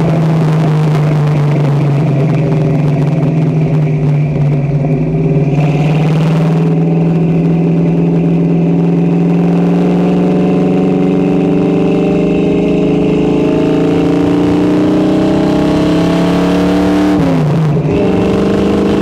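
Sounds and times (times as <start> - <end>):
car exhaust note climbing: 0.0 - 19.0.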